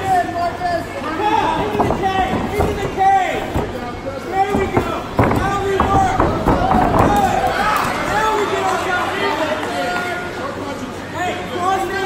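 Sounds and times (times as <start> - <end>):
thuds against cage and mat: 1.6 - 7.8.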